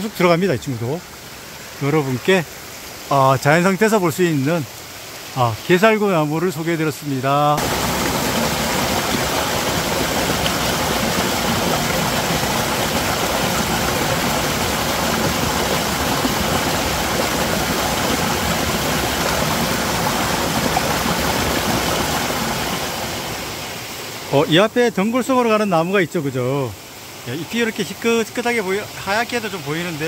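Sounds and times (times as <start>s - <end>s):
stream rushing over boulders: 0.0s - 30.0s.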